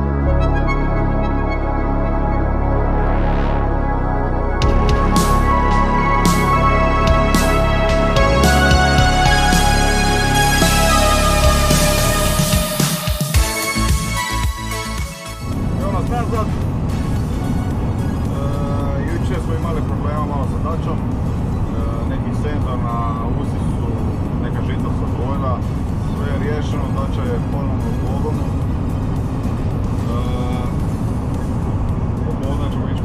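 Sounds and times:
road and engine drone: 0:00.0 - 0:33.0
man talking: 0:15.8 - 0:16.6, 0:18.3 - 0:21.1, 0:21.7 - 0:28.5, 0:30.0 - 0:30.8, 0:32.2 - 0:33.0.

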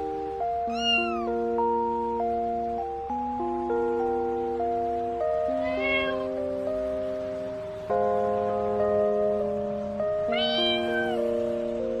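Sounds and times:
background music sustained notes: 0:00.0 - 0:12.0
kitten meow: 0:00.6 - 0:01.4, 0:05.5 - 0:06.4, 0:10.2 - 0:11.2.

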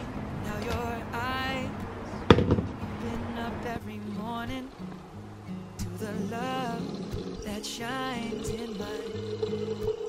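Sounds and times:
pop song with singer: 0:00.4 - 0:05.0, 0:05.8 - 0:10.0
light knocks: 0:02.3 - 0:02.8.

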